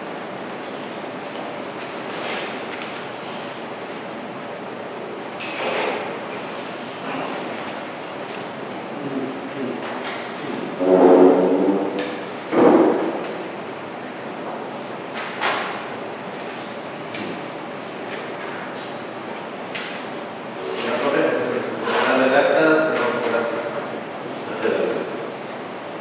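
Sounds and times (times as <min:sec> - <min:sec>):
echoing hall background noise: 0:00.0 - 0:26.0.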